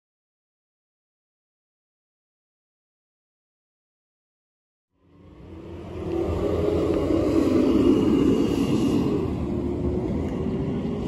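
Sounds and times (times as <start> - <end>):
low engine rumble: 5.0 - 11.0.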